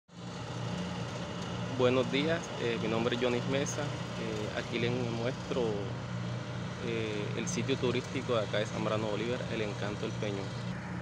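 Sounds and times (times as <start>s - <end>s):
low motor hum: 0.1s - 11.0s
man speaking: 1.8s - 6.0s, 6.8s - 10.6s.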